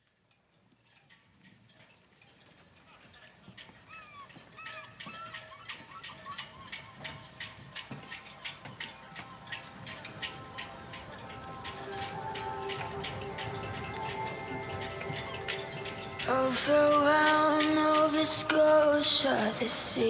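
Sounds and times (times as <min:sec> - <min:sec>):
patter of drips: 0:00.0 - 0:20.0
soft steady music tones: 0:00.0 - 0:20.0.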